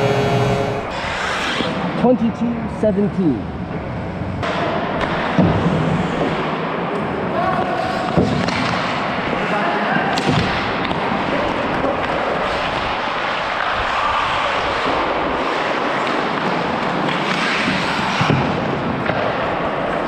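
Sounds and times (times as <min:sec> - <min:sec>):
skates scraping on ice: 0:00.0 - 0:02.0, 0:07.4 - 0:20.0.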